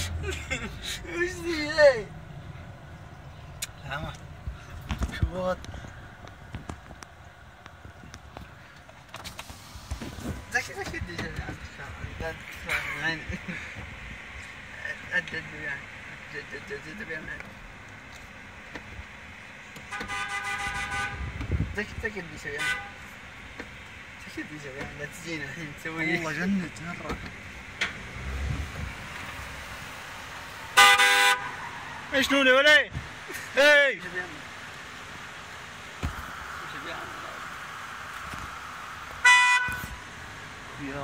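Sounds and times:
voices: 0.0 - 8.9, 10.4 - 41.0
car driving hum: 0.0 - 41.0
car horn: 19.8 - 21.6, 22.4 - 23.2, 30.7 - 32.3, 39.2 - 40.1.

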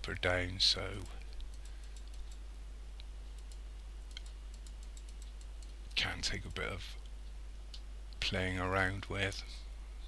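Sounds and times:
low electrical hum: 0.0 - 10.0
mouse and keyboard clicking: 1.2 - 2.4, 3.3 - 6.0.

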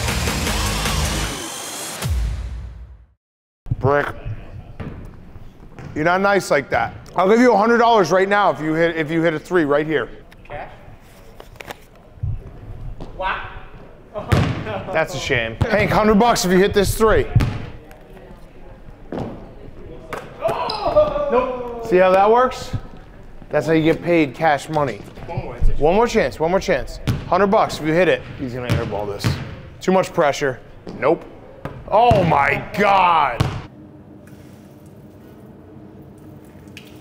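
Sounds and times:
basketball knock: 17.3 - 17.8
man shouting excitedly: 20.4 - 22.1, 31.9 - 33.6.

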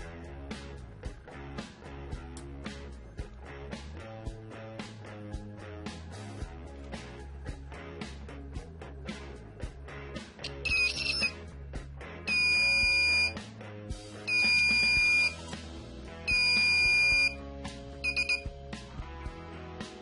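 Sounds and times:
background music: 0.0 - 20.0
electronic buzzer beeping: 10.4 - 11.3, 12.3 - 13.4, 14.3 - 15.4, 16.3 - 17.4, 18.0 - 18.5.

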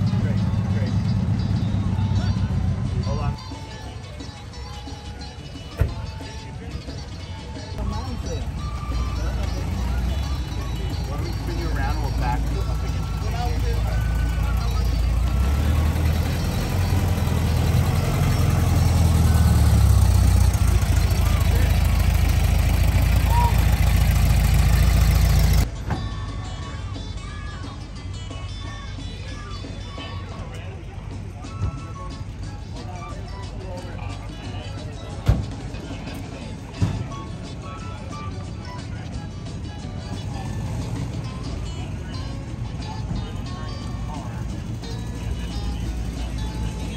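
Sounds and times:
car engine rumble: 0.0 - 27.7, 35.1 - 46.9
music: 0.0 - 46.9.

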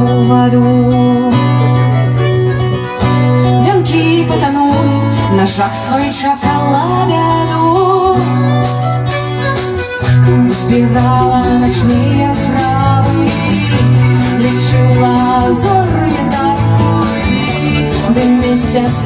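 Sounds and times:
electric bass: 0.0 - 19.0
strummed acoustic guitar: 0.0 - 19.0
sustained melody line: 0.0 - 19.0
drum kit: 8.2 - 19.0.

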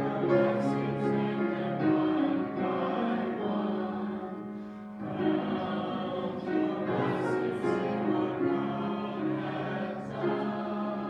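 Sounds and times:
voices singing together: 0.0 - 11.0.

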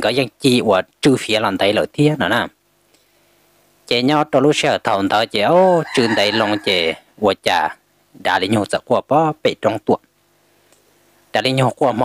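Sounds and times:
man telling a story: 0.0 - 2.6, 3.8 - 10.1, 11.3 - 12.0.

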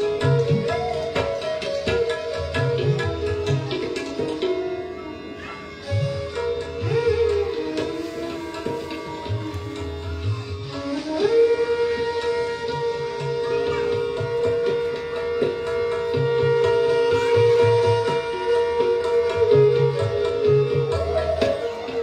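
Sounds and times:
bamboo flute playing: 0.0 - 22.0.

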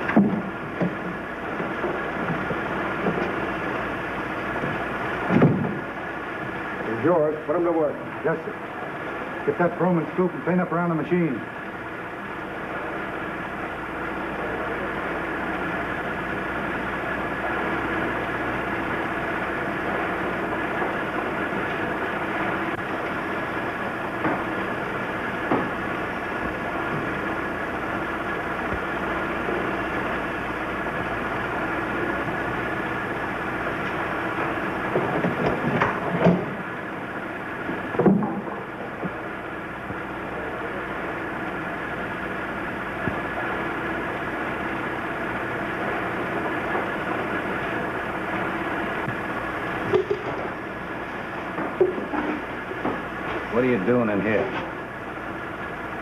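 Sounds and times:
machinery droning: 0.0 - 56.0.

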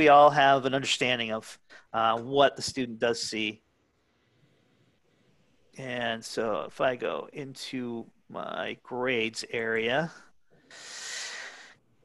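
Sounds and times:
person breathing: 10.5 - 12.0.

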